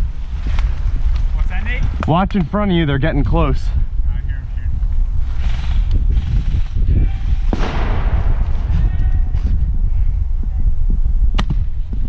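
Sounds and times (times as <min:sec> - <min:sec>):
low microphone rumble: 0:02.8 - 0:12.0
airsoft gun shot crack: 0:07.5 - 0:09.2.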